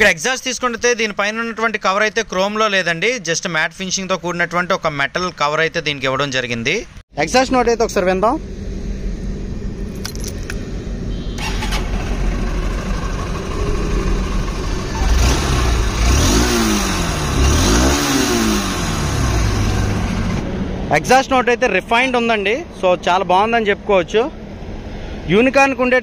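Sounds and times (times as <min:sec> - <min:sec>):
motorcycle engine idling and revving: 0:07.8 - 0:21.6.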